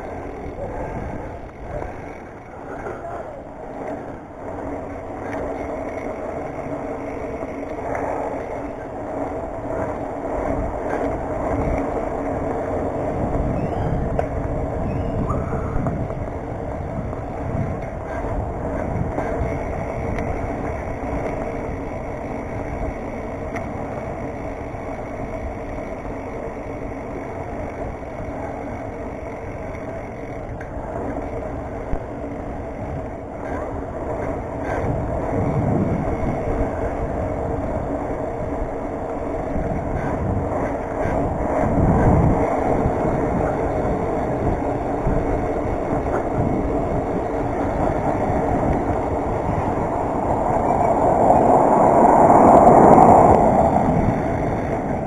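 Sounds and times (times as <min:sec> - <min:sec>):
bike tyres rolling on concrete: 0:00.0 - 0:55.0
car approaching: 0:00.0 - 0:55.0
road traffic: 0:00.0 - 0:55.0
wind on camera microphone: 0:00.0 - 0:55.0.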